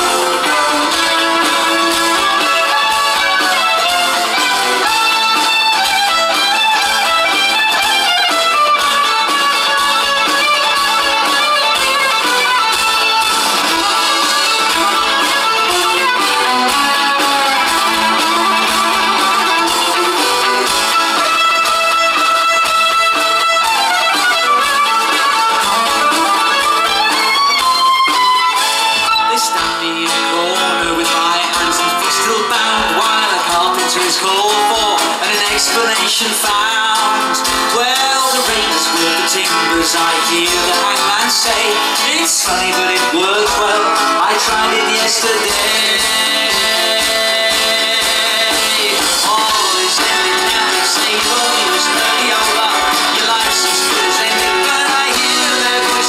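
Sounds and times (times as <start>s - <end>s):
fiddle playing lead: 0.0s - 56.0s
guitar accompaniment: 0.0s - 56.0s.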